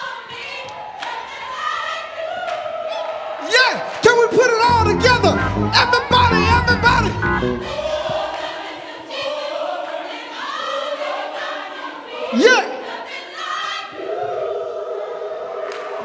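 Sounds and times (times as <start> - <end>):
gospel choir singing: 0.0 - 3.4, 4.7 - 16.0
bass and drums: 4.7 - 8.3.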